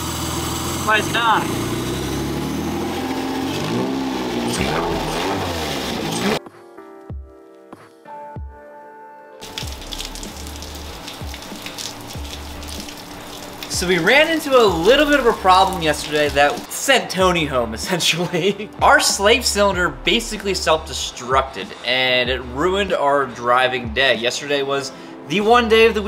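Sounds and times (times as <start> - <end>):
car engine running: 0.0 - 6.4
low pulsing music tones: 0.1 - 6.4, 9.4 - 26.0
music with held tones: 2.2 - 26.0
rain: 9.4 - 16.7.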